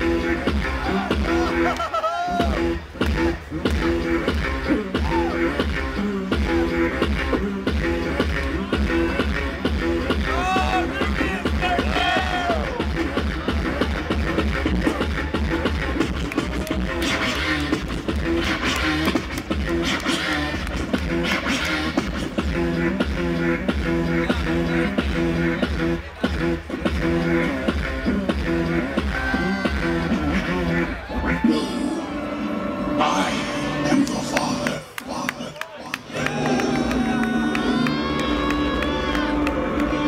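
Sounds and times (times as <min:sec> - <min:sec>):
bass-heavy beat: 0:00.0 - 0:31.8, 0:33.3 - 0:40.0.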